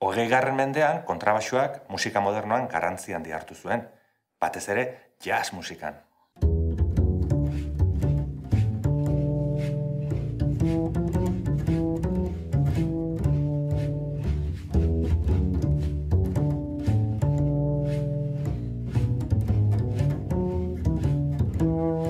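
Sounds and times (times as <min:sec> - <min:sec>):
double bass plucked: 0:06.4 - 0:22.0.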